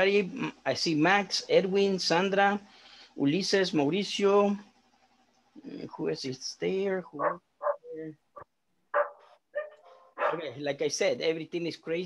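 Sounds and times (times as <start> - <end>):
dog barking: 7.2 - 10.5.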